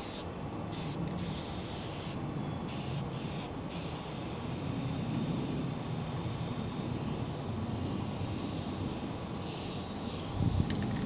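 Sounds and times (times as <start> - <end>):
spray paint can hissing: 0.0 - 11.0.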